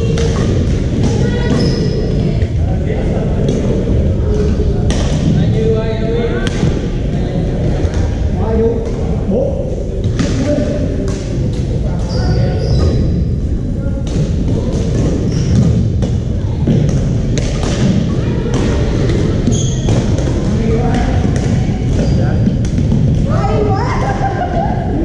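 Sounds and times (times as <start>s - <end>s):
court shoes squeaking: 0.0s - 2.5s, 11.1s - 13.2s, 14.1s - 23.3s
chatter of many players: 0.0s - 25.0s.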